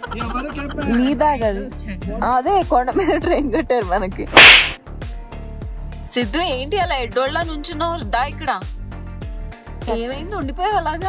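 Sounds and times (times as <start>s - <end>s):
background music: 0.0s - 11.0s
whoosh transition effect: 4.3s - 4.8s.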